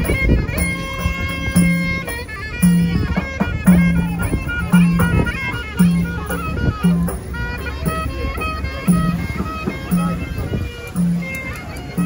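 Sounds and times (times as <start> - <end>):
clarinet melody: 0.0 - 12.0.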